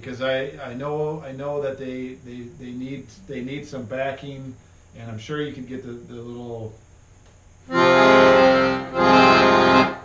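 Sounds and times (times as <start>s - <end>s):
accordion holding notes: 7.7s - 10.0s.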